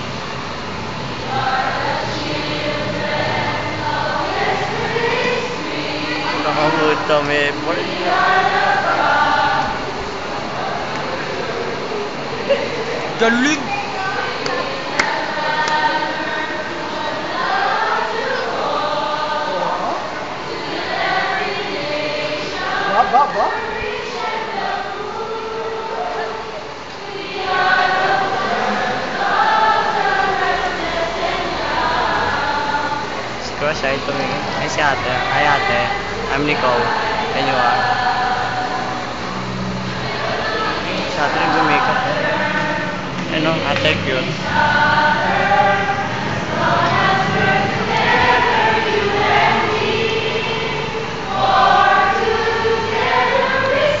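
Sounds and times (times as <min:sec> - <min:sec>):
young voices singing together: 0:00.0 - 0:54.0.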